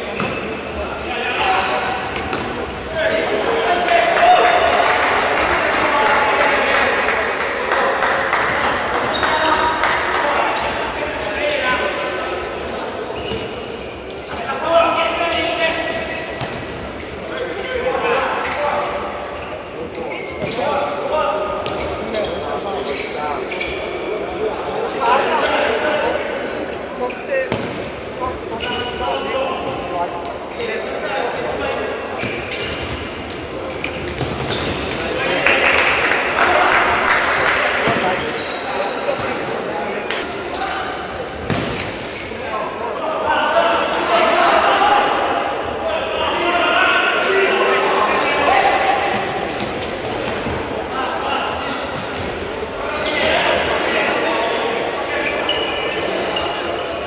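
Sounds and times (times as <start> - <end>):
people shouting and chattering: 0.0 - 57.0.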